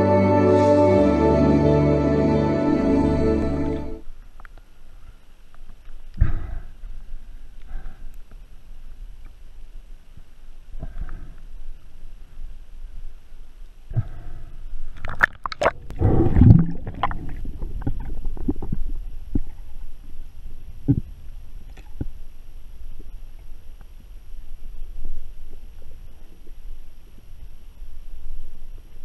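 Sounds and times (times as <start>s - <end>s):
low underwater rumble: 13.9s - 28.9s
water splashing and gurgling: 15.0s - 19.7s.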